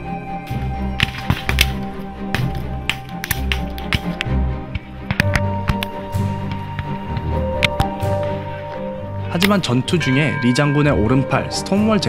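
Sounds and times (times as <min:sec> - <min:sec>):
low pulsing beat: 0:00.0 - 0:09.3
music with held tones: 0:00.0 - 0:12.0
sharp cracks: 0:00.9 - 0:06.8.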